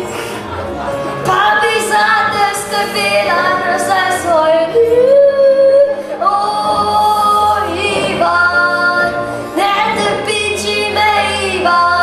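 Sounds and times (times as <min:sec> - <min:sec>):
girl singing in a high voice: 0:01.3 - 0:12.0.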